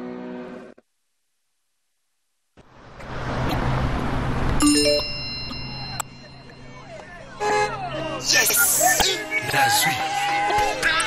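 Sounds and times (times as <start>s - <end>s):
bright rising chime: 4.6s - 6.8s
ringing high tone: 4.6s - 7.0s.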